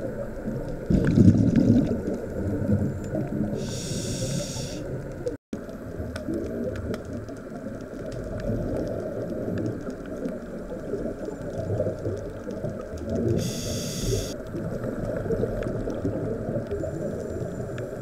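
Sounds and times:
exhaled bubbles: 0.0s - 5.0s
muffled underwater water churn: 0.0s - 18.0s
short high hiss: 3.6s - 4.8s, 13.4s - 14.4s.

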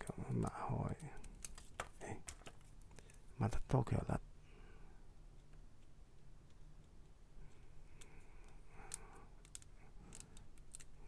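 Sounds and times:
small plastic parts clicking: 0.3s - 3.2s, 5.3s - 11.0s.

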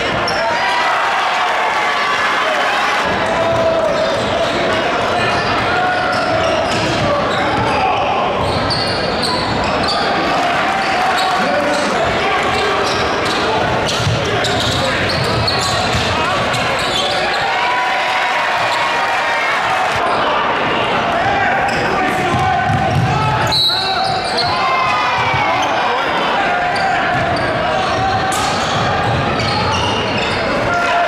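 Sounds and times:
crowd talking and shouting: 0.0s - 31.0s.

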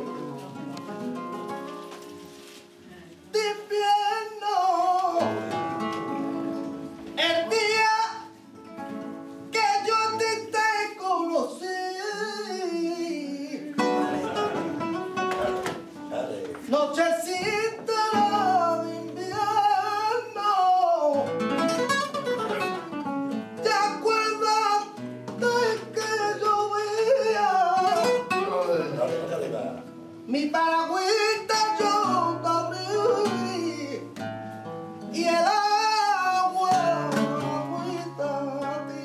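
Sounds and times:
flamenco guitar: 0.0s - 39.0s
person singing flamenco: 0.0s - 39.0s.

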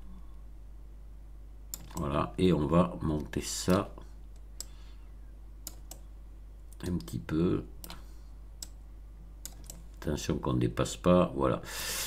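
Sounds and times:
low steady hum: 0.0s - 12.0s
computer keys clicking: 1.7s - 2.1s, 5.6s - 6.1s, 7.8s - 8.0s, 8.6s - 8.8s, 9.4s - 10.0s.

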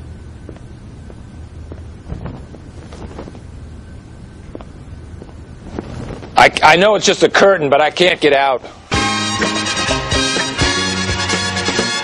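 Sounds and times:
low room rumble: 0.0s - 11.6s
footsteps on hard floor: 0.5s - 3.4s, 4.5s - 6.4s.

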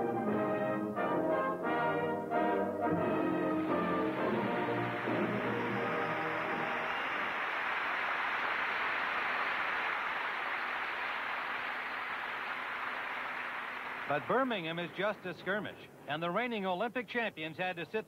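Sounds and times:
orchestral music: 0.0s - 7.5s
audience applauding: 3.9s - 15.3s.

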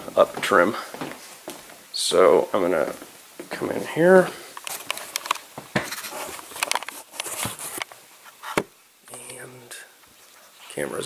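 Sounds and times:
small objects clicking and knocking: 4.6s - 7.9s.

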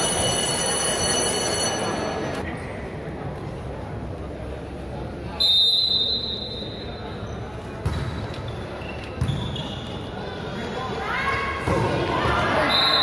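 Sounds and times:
referee's whistle: 5.4s - 7.0s, 12.6s - 13.0s.

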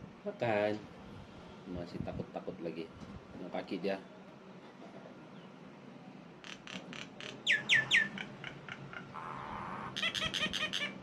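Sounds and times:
myna calling: 6.4s - 11.0s.

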